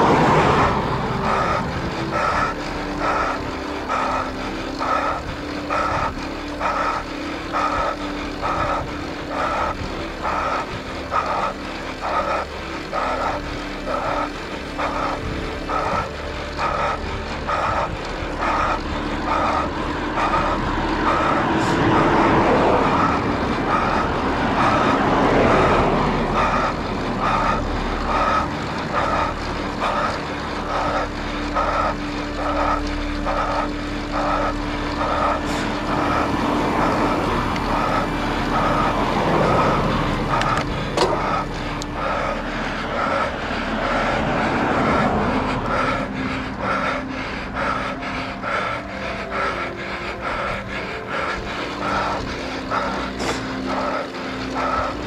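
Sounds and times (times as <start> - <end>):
car passing on road: 0.0 - 55.0
regular pulsing sound: 0.0 - 55.0
vehicle engine hum: 0.0 - 55.0.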